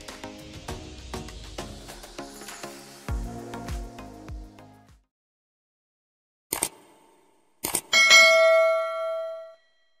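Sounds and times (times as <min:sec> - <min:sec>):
notification bell ding: 0:08.0 - 0:09.7.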